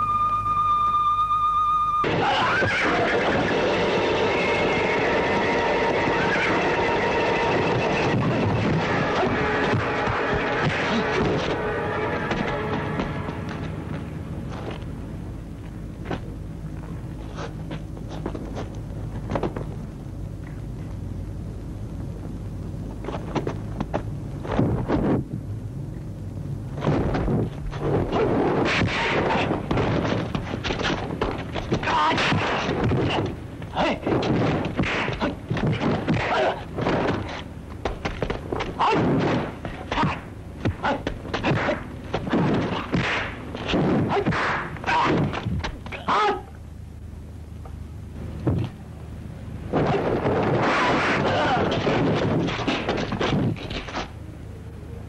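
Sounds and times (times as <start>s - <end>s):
high wavering musical note: 0.0s - 2.1s
film score with action effects: 0.0s - 14.5s
steady low hum: 0.0s - 55.0s
horses neighing: 2.2s - 8.0s
fight blows thunking: 26.8s - 46.0s, 49.7s - 54.1s
struggle noise: 26.8s - 46.6s, 49.7s - 54.1s.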